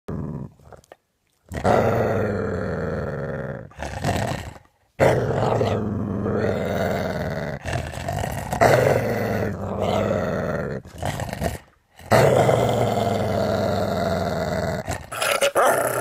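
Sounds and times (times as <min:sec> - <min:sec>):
large dog growling: 0:00.1 - 0:16.0.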